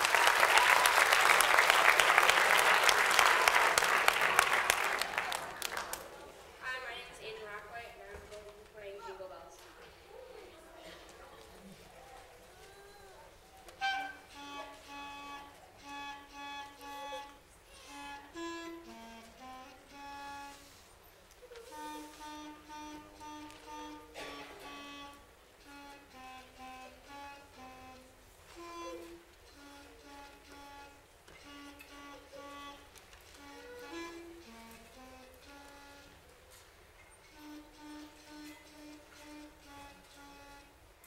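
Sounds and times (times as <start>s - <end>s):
clarinet melody: 13.7s - 36.6s, 37.2s - 41.0s.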